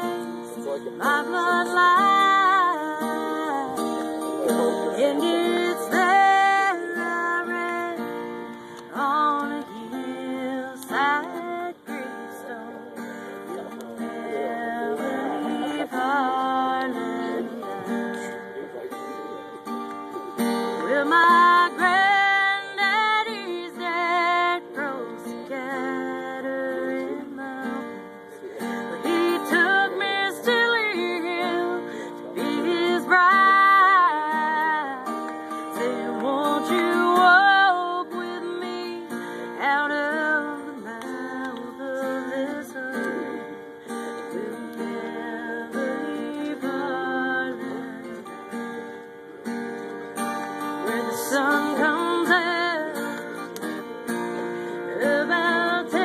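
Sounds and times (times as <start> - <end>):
acoustic guitar strummed chords: 0.0 - 56.0
person singing slow melody: 0.0 - 56.0.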